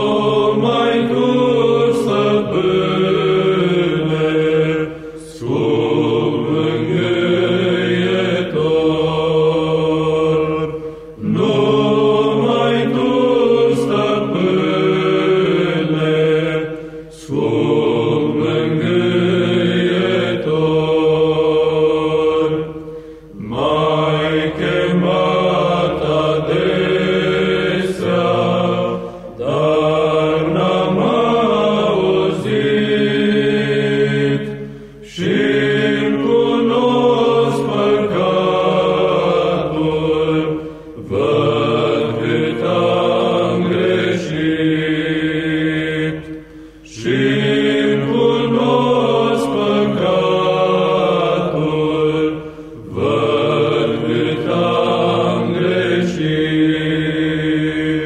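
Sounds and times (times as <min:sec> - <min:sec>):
male choir singing unaccompanied: 0:00.0 - 0:58.0.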